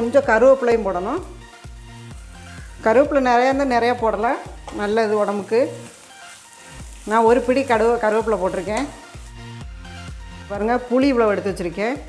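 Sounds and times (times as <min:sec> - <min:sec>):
food sizzling in oil: 0:00.0 - 0:12.0
voice in music: 0:00.0 - 0:12.0
background music with bass beat: 0:08.3 - 0:11.8.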